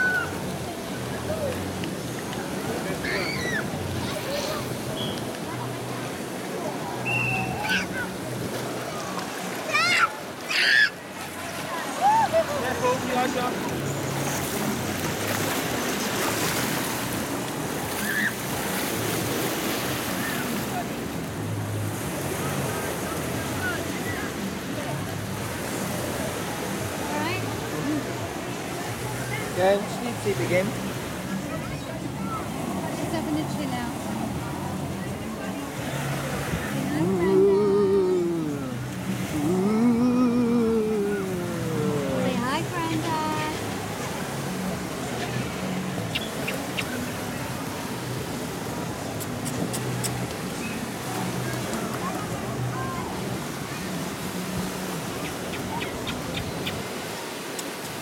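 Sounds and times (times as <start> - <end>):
faint shouts and voices: 0.0 - 1.8, 2.4 - 14.0, 30.9 - 45.0
water rushing in wave pool: 0.0 - 58.0
person humming: 36.9 - 42.4.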